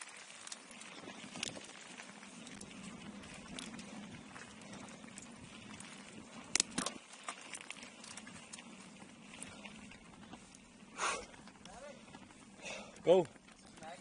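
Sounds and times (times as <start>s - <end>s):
bike parts clicking and rattling: 0.0s - 14.0s
bike tyres on dirt: 0.0s - 14.0s.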